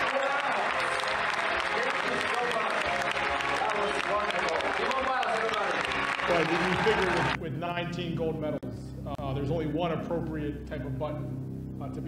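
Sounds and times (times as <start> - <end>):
large audience applauding: 0.0 - 7.4.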